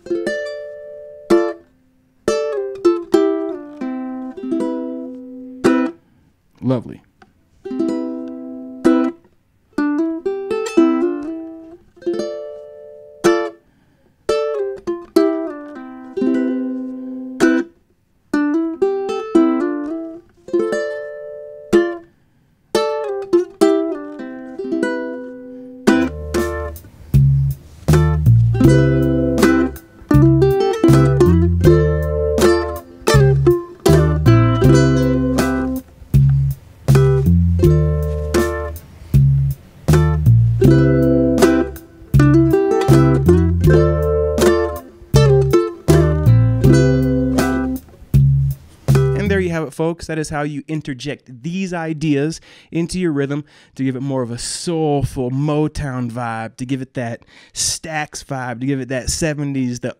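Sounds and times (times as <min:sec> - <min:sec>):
ukulele strumming: 0:00.0 - 0:06.0, 0:07.5 - 0:13.6, 0:14.3 - 0:22.1, 0:22.7 - 0:49.7
backing track with bass line: 0:25.8 - 0:52.3.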